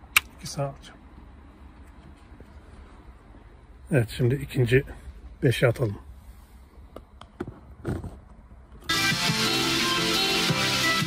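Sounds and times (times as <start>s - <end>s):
electronic background music: 8.9s - 11.0s.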